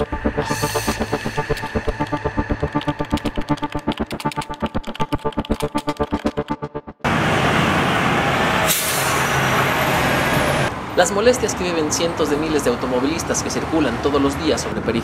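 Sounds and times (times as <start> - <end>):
electronic pulsing music: 0.0 - 7.1
heavy road traffic: 7.0 - 15.0.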